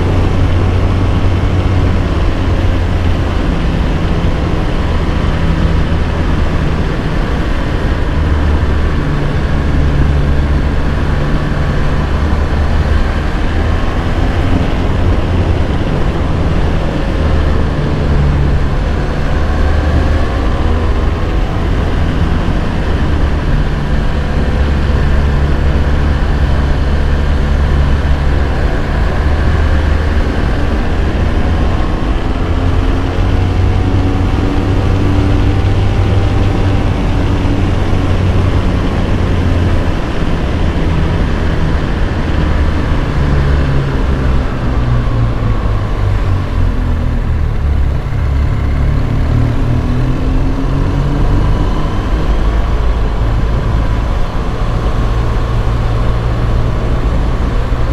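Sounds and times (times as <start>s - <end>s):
motorcycle engine running: 0.0s - 57.9s
wind and road noise: 0.0s - 57.9s.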